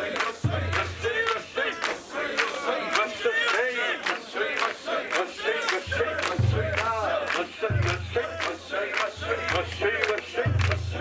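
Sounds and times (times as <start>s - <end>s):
crowd shouting chants: 0.0s - 11.0s.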